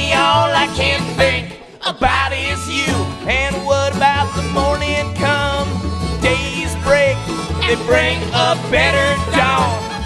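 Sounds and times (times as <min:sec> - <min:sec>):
bluegrass band playing: 0:00.0 - 0:10.0.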